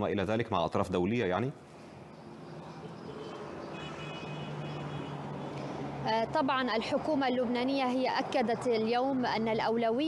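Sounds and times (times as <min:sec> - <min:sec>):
low hum of traffic: 0:00.0 - 0:10.0.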